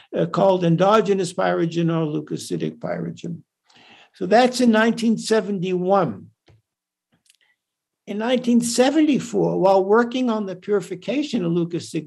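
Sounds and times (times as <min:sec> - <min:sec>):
man speaking: 0:00.0 - 0:03.5, 0:04.2 - 0:06.4, 0:08.0 - 0:12.0.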